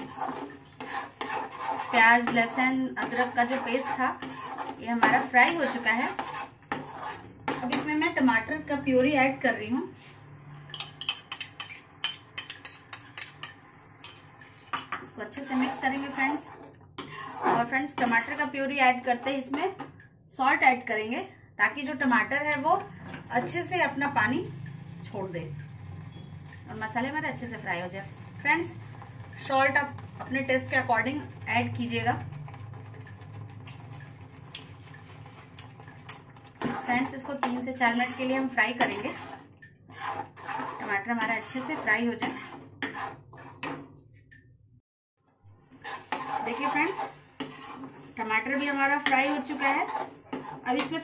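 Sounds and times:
gravy bubbling in a pan: 0:00.0 - 0:07.6, 0:27.3 - 0:41.8, 0:45.6 - 0:50.8.

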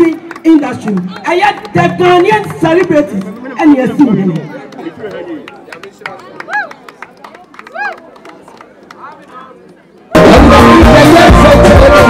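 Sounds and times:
crowd clapping: 0:00.0 - 0:10.8.

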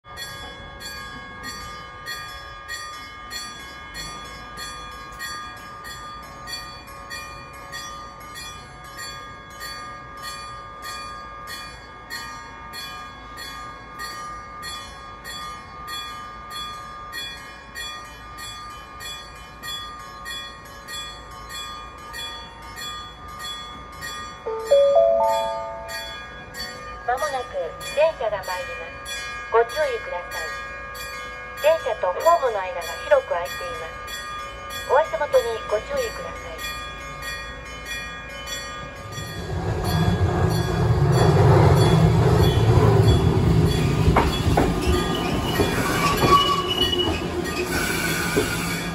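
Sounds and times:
railway warning bell ringing: 0:00.0 - 0:48.9
tram approaching: 0:00.0 - 0:48.9
rising chime from a speaker: 0:22.0 - 0:47.7.

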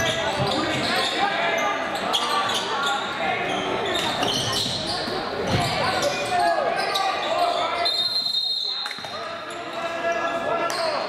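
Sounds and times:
players and spectators calling out: 0:00.0 - 0:11.0.

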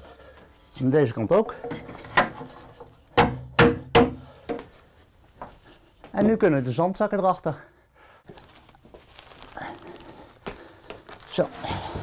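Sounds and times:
hammer striking a wedge: 0:03.2 - 0:04.2.

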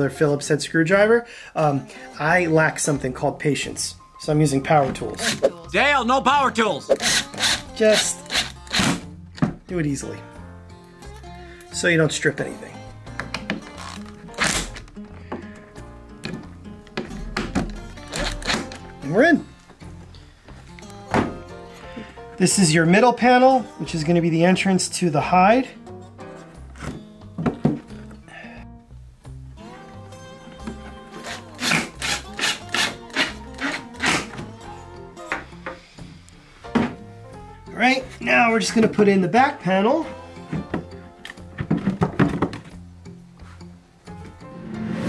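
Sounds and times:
background music: 0:00.0 - 0:45.0
wooden panels knocking: 0:41.6 - 0:42.8.

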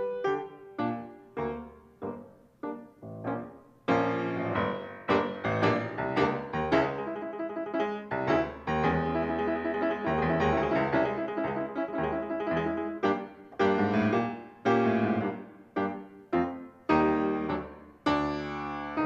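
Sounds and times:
solo piano: 0:00.0 - 0:19.0.

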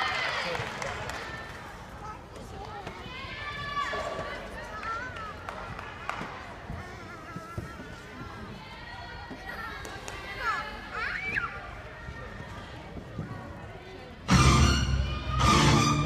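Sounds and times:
background voices and chatter: 0:00.0 - 0:16.0.

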